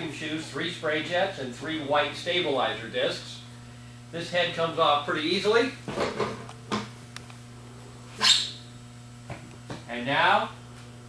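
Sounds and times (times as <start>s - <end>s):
electrical hum: 0.0s - 11.0s
knocks and clunks of cleaning head: 5.9s - 6.9s
loud squeak: 8.2s - 8.6s.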